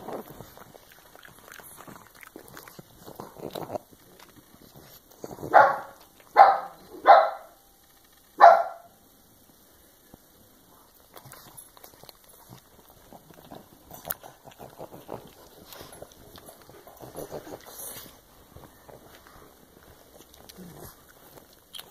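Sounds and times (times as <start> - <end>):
dog barking: 5.4 - 7.6, 8.4 - 9.0.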